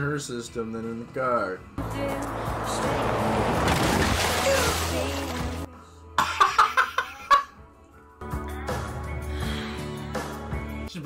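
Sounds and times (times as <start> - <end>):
men laughing: 6.2 - 7.6.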